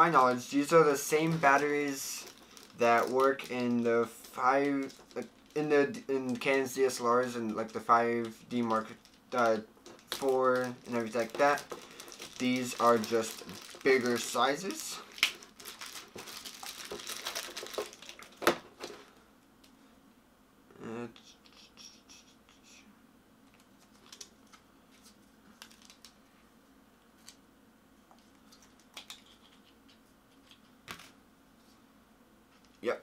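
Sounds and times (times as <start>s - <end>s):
packaging crinkling: 0.0s - 19.2s, 23.5s - 26.2s.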